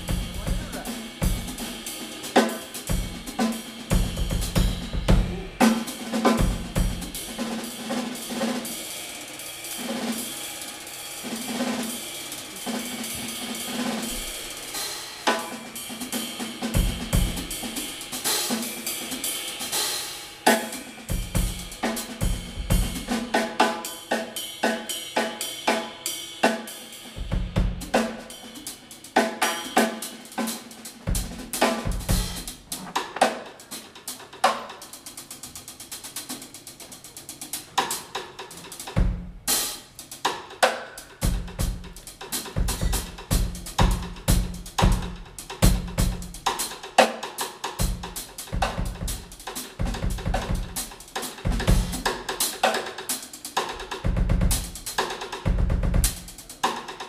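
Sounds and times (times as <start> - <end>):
jazz band playing live: 0.0 - 8.8, 9.5 - 57.0
drum kit: 0.0 - 57.0.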